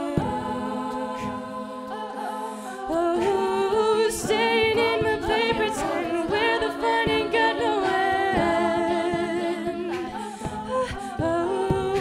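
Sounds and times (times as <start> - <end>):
women singing in harmony: 0.0 - 12.0
beatboxing: 3.2 - 12.0.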